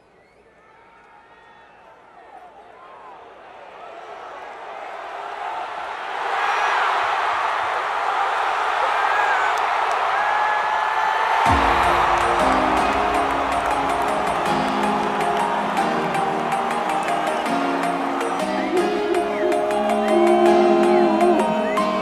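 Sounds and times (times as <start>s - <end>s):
stadium crowd cheering: 0.0s - 22.0s
music with held chords and beat: 11.5s - 22.0s.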